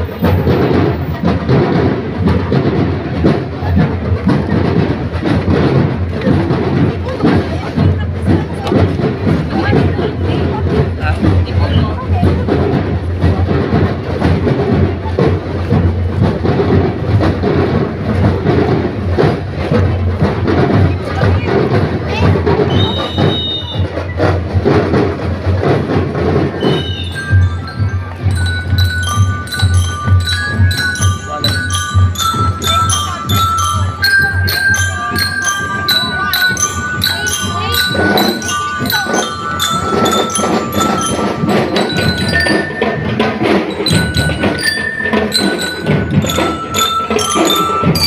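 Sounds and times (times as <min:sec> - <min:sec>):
marching drums beating: 0:00.0 - 0:48.0.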